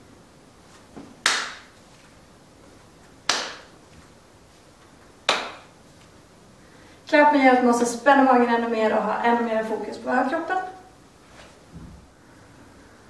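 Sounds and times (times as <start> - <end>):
sharp hand claps: 1.2 - 1.8, 3.3 - 3.8, 5.3 - 5.7.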